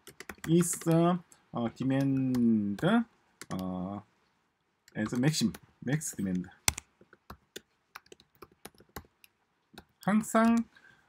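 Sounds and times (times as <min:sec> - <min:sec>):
typing on computer keyboard: 0:00.0 - 0:01.0, 0:06.7 - 0:10.6.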